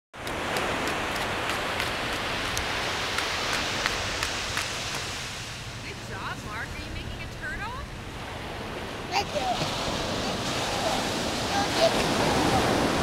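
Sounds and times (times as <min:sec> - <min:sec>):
ocean surf: 0:00.2 - 0:13.0
wind on microphone: 0:00.2 - 0:13.0.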